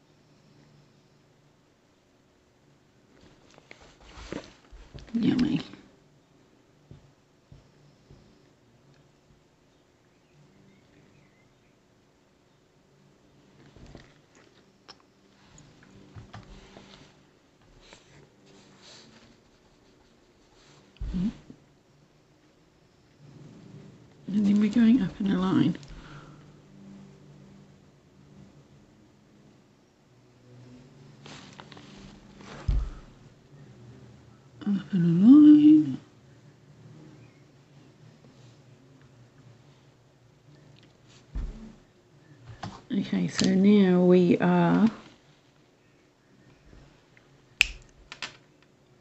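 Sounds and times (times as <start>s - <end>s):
faint low rumble: 12.5s - 47.5s.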